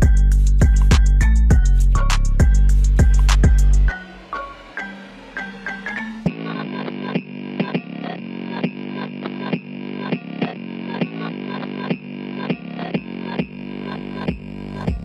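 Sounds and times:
deep bass: 0:00.0 - 0:06.3, 0:13.0 - 0:15.0
filtered trap hip-hop beat: 0:00.0 - 0:15.0.

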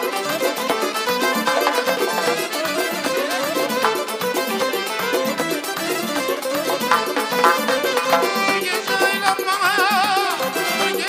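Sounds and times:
accordion dance music: 0:00.0 - 0:11.0.

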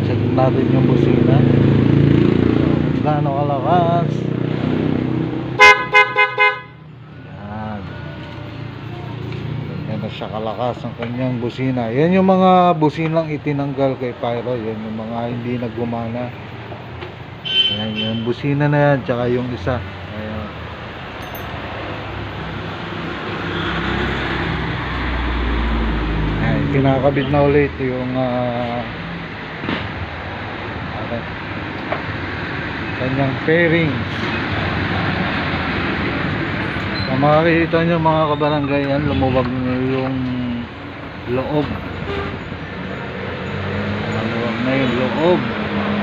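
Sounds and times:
vehicle engine and road noise: 0:00.0 - 0:46.0
motorcycle horn toot: 0:05.6 - 0:06.9, 0:17.4 - 0:18.3.

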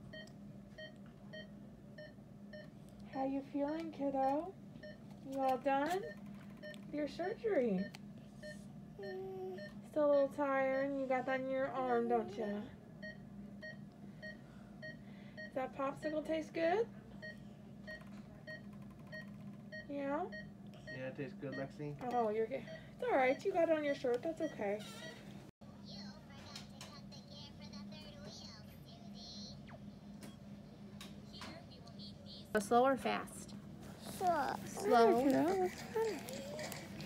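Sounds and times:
patient monitor beeping: 0:00.0 - 0:16.6, 0:17.2 - 0:25.3, 0:34.0 - 0:37.0.

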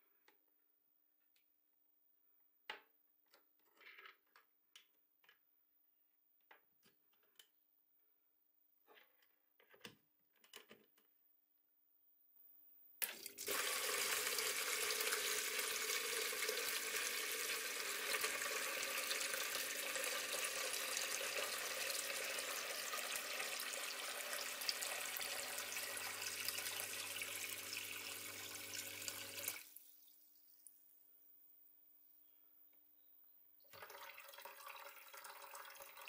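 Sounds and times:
pump humming: 0:13.0 - 0:29.7
water pouring into plastic bucket: 0:13.0 - 0:30.1, 0:33.7 - 0:36.0.

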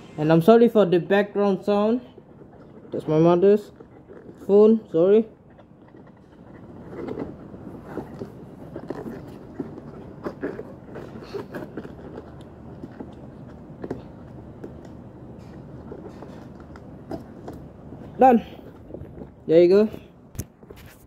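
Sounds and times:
low background rumble: 0:00.0 - 0:03.0.

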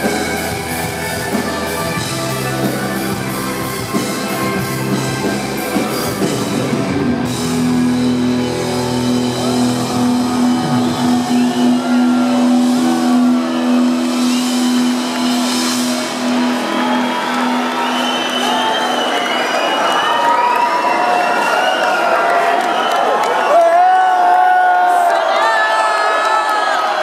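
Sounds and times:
crowd cheering and whistling: 0:00.0 - 0:27.0.

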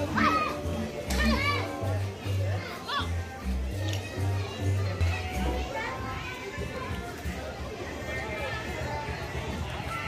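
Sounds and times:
children calling out: 0:00.0 - 0:02.0.

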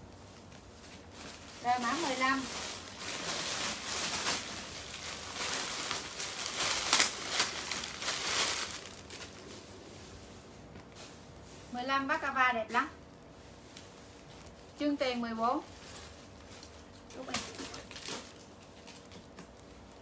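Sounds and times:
plastic bag crinkling: 0:00.1 - 0:20.0.

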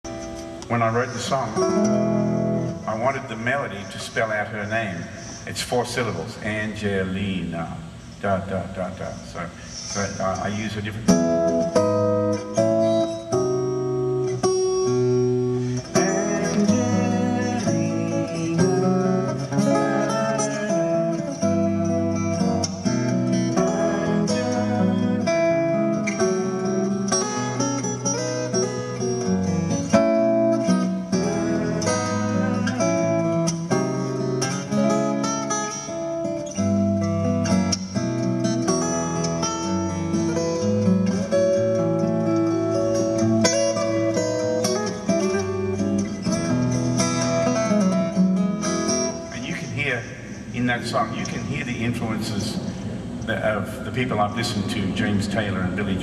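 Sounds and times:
fingerstyle acoustic guitar: 0:00.1 - 0:04.5, 0:09.8 - 0:49.5.

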